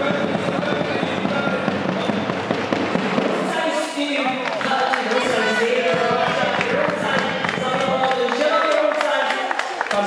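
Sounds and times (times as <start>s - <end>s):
music: 0.0s - 3.5s, 5.2s - 8.1s
voices: 0.0s - 10.0s
spectators clapping: 4.2s - 10.0s.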